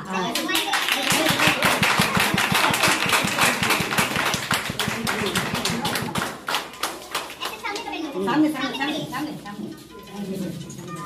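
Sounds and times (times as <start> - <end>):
group of people applauding: 0.2 - 7.8.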